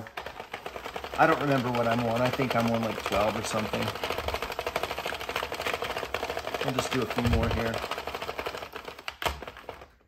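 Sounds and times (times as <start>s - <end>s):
knitting machine gears clicking: 0.0s - 10.0s.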